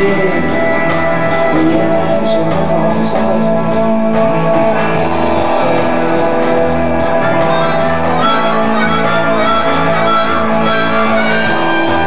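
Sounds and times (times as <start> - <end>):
electric guitar: 0.0 - 12.0
live band playing: 0.0 - 12.0.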